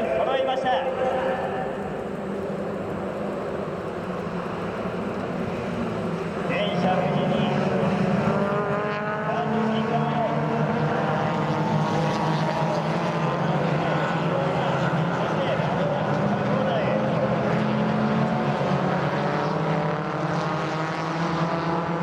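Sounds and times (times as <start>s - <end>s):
race cars racing past: 0.0s - 22.0s.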